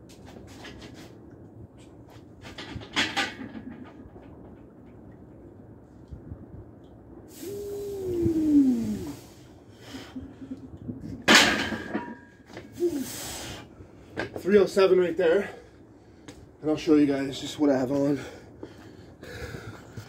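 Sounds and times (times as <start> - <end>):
man groaning with strain: 7.3 - 9.2.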